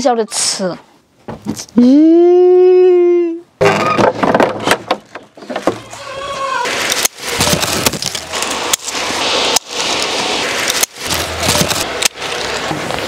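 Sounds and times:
branches and leaves rustling: 0:04.0 - 0:13.0.

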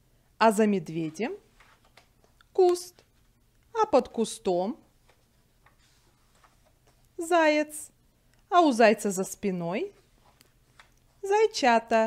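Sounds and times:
page turning rustle: 0:01.0 - 0:03.4, 0:05.0 - 0:07.2, 0:10.0 - 0:11.2
light ticks of page: 0:10.2 - 0:11.1.

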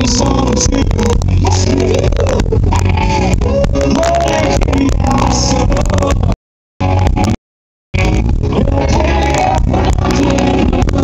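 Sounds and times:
rock band playing loudly: 0:00.0 - 0:07.4, 0:08.0 - 0:11.0.

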